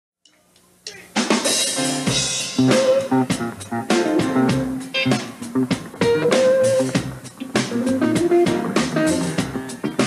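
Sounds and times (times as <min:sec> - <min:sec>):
funk blues band playing: 0:00.9 - 0:10.0
low bass notes: 0:01.9 - 0:10.0.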